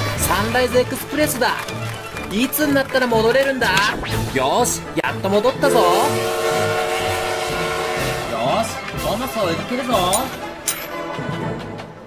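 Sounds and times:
steam locomotive whistle: 0:05.7 - 0:08.8.

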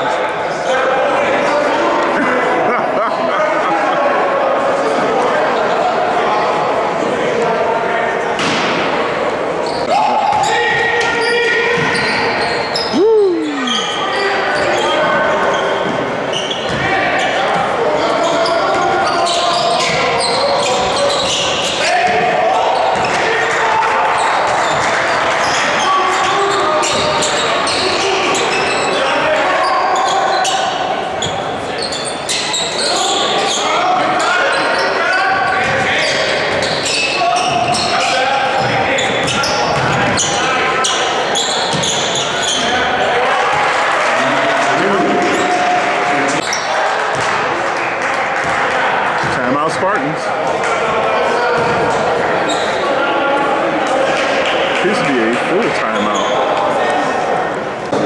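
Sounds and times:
chatter of spectators: 0:00.0 - 0:58.0.

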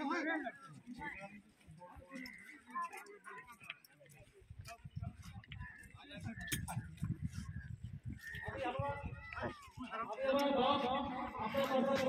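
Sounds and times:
people talking: 0:08.3 - 0:12.0.

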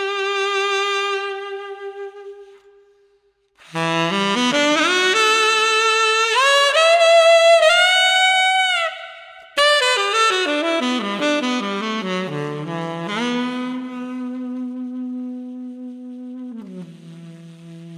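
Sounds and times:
tenor saxophone: 0:00.0 - 0:17.9.

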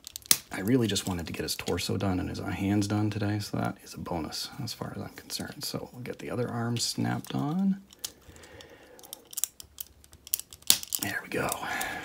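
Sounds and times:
plastic clicks: 0:07.2 - 0:12.0.

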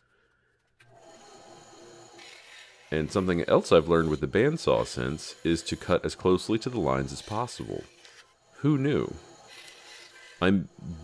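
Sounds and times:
bandsaw cutting wood: 0:00.9 - 0:11.0.

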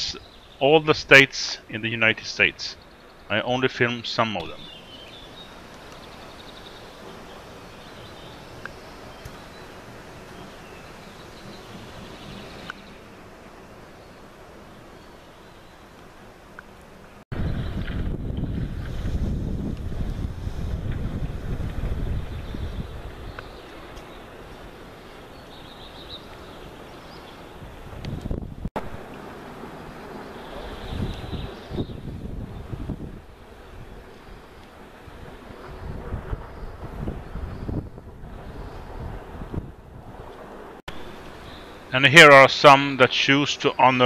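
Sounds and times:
wind buffeting microphone: 0:17.3 - 0:26.9, 0:27.5 - 0:41.2.

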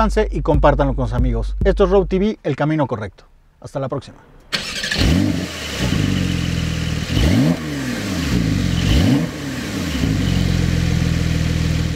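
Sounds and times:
engine revving: 0:04.4 - 0:11.9.

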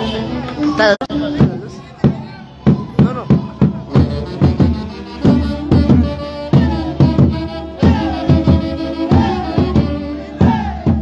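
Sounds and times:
saxophone and clarinet lines: 0:03.8 - 0:10.5.

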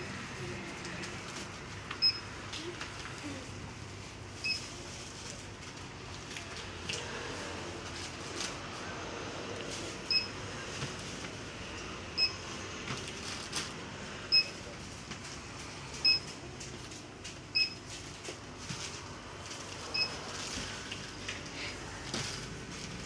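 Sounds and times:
barcode scanner beeping: 0:02.0 - 0:02.3, 0:10.1 - 0:10.4, 0:12.2 - 0:12.4, 0:14.3 - 0:14.6, 0:16.0 - 0:16.3, 0:17.5 - 0:17.8, 0:19.9 - 0:20.2
plastic bags rustling: 0:02.6 - 0:11.6, 0:12.8 - 0:13.9, 0:14.6 - 0:23.0.

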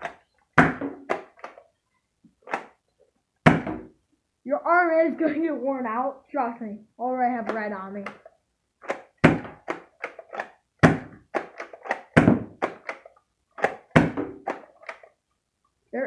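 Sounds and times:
toy dart blaster clacking: 0:08.8 - 0:10.6, 0:11.2 - 0:15.1.

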